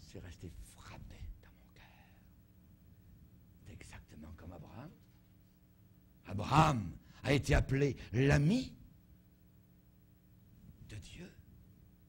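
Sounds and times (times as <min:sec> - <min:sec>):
low steady hum: 0:00.0 - 0:12.0
man speaking: 0:06.3 - 0:08.8, 0:10.9 - 0:11.4.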